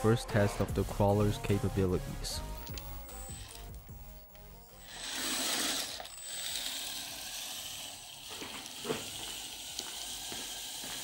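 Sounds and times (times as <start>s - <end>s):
electric motor whirring: 2.4s - 11.0s.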